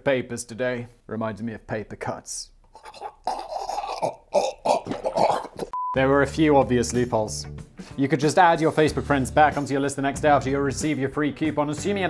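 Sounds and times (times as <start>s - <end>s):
censor bleep: 5.8s - 6.0s.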